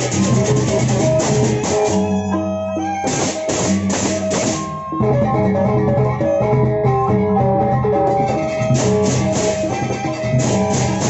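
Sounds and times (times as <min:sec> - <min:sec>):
kettle gongs struck with mallets: 0:00.0 - 0:05.8, 0:08.1 - 0:11.0.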